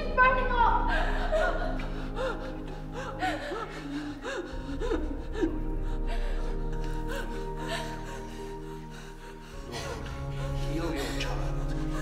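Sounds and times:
music of steady held tones: 0.0s - 12.0s
person crying in gasping sobs: 0.8s - 10.4s.

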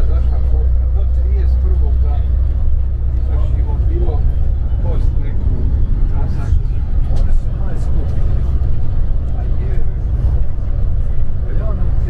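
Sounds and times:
coach engine and tyres rumbling: 0.0s - 12.0s.

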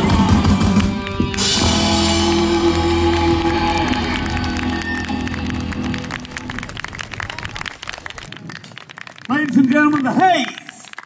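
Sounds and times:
rock band final chord: 0.0s - 6.3s
audience clapping: 0.0s - 11.0s.

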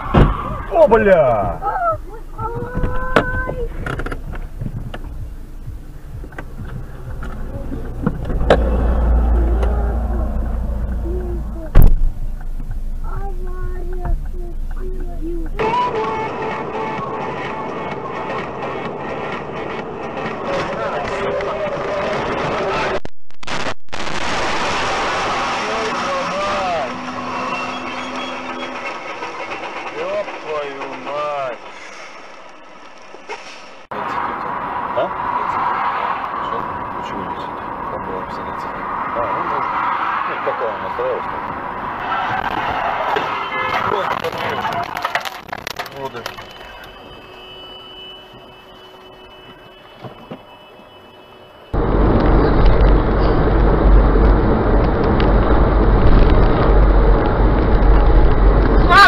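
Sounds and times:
voices: 0.0s - 3.9s, 7.0s - 18.0s, 33.9s - 41.4s, 42.0s - 47.4s
heavy rumble: 0.0s - 15.6s, 19.9s - 33.9s, 51.8s - 59.0s
road and engine noise: 0.0s - 59.0s.

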